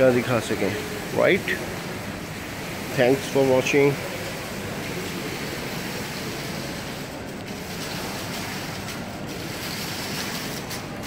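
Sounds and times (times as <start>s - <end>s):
falling water rushing: 0.0s - 11.0s.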